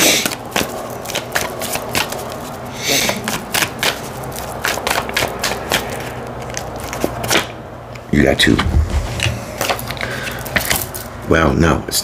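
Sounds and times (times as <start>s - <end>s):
cards being shuffled by hand: 0.0s - 7.5s, 8.6s - 11.2s.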